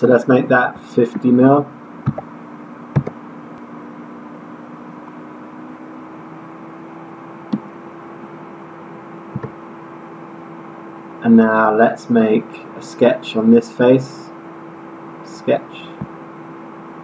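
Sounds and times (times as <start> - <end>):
faint hum: 0.0 - 17.0.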